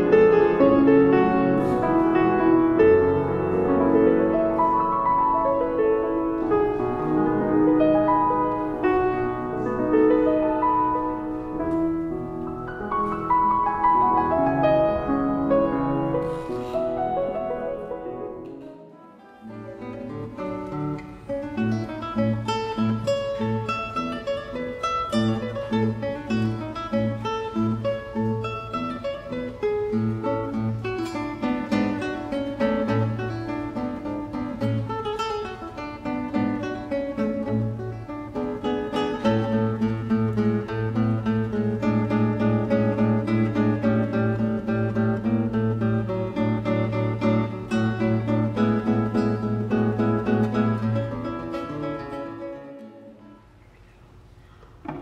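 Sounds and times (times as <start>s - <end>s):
fingerpicked classical guitar: 0.0s - 55.0s.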